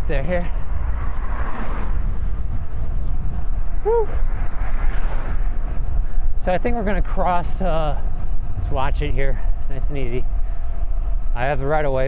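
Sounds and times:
bicycle tyres on pavement: 0:00.0 - 0:12.0
wind rumble on microphone: 0:00.0 - 0:12.0
rider shouting woo: 0:03.8 - 0:04.2.

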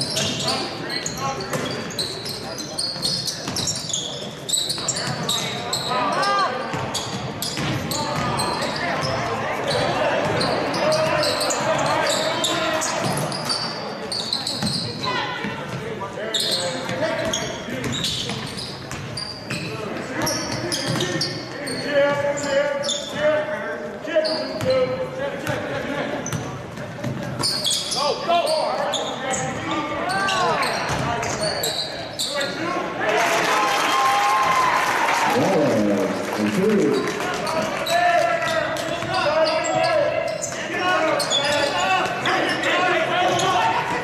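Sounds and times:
sneaker squeaks: 0:00.0 - 0:32.6, 0:36.9 - 0:44.0
players calling out: 0:34.0 - 0:44.0.

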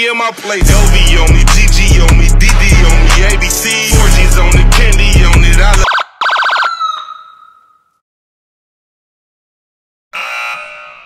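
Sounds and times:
electronic horn blasts: 0:10.1 - 0:11.0.

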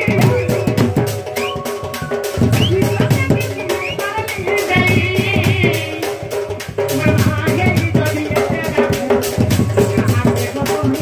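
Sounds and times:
folk dance melody: 0:00.0 - 0:05.6
barrel drum beaten with a stick: 0:00.0 - 0:11.0.

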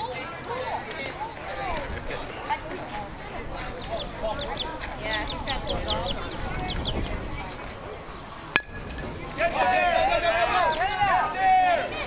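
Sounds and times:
baseball bat hitting ball: 0:08.5 - 0:09.5
spectators shouting and cheering: 0:08.8 - 0:12.0.

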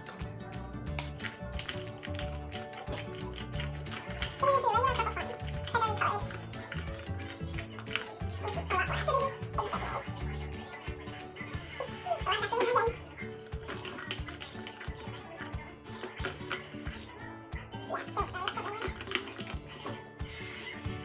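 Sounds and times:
pop music with steady beat: 0:00.0 - 0:21.0
person singing: 0:04.0 - 0:21.0.

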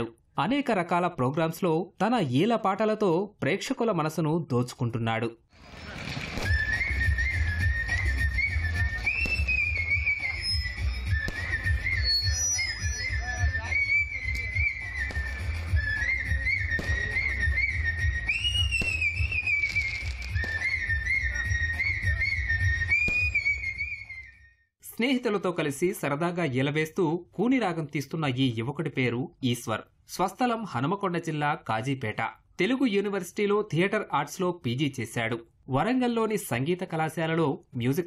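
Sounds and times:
man whistling a melody: 0:06.4 - 0:24.6.

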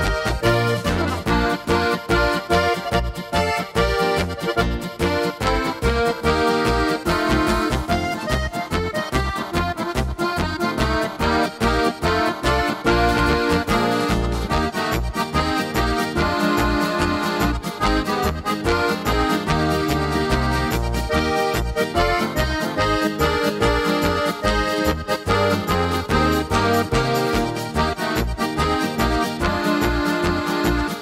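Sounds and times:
accordion voice on keyboard: 0:00.0 - 0:31.0
keyboard polka accompaniment: 0:00.0 - 0:31.0
polka bass notes: 0:00.0 - 0:31.0.

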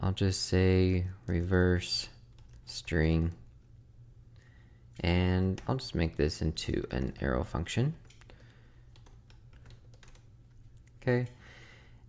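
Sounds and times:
keyboard keystrokes: 0:02.3 - 0:03.5, 0:08.0 - 0:11.4.

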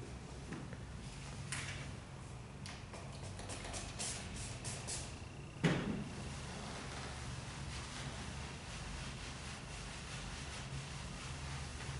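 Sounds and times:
spray bottle hissing: 0:03.7 - 0:05.1.

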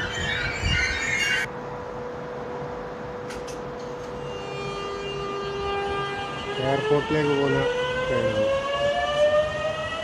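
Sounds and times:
electric train motors whining: 0:03.8 - 0:10.0.

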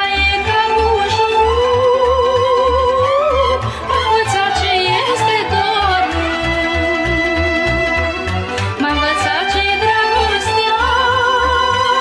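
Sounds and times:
folk orchestra playing: 0:00.0 - 0:12.0.

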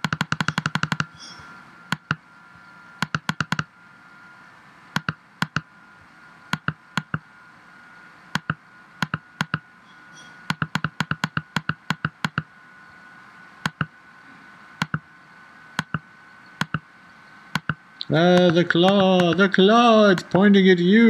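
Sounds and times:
computer mouse button clicking: 0:00.0 - 0:01.1, 0:03.0 - 0:03.7, 0:05.0 - 0:05.6, 0:08.4 - 0:09.6, 0:10.5 - 0:12.5, 0:13.6 - 0:13.9, 0:14.8 - 0:15.0, 0:15.8 - 0:16.0, 0:16.6 - 0:16.8, 0:17.5 - 0:17.8.

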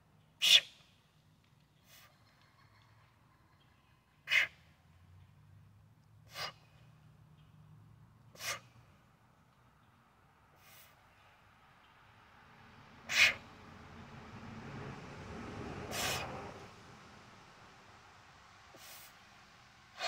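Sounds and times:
man's forceful breaths: 0:06.2 - 0:06.8, 0:08.4 - 0:08.8, 0:13.1 - 0:13.6, 0:15.9 - 0:16.5.

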